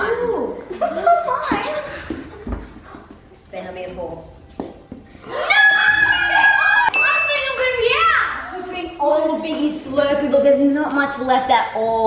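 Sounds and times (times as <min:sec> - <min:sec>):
children shrieking and squealing: 0:05.3 - 0:07.0.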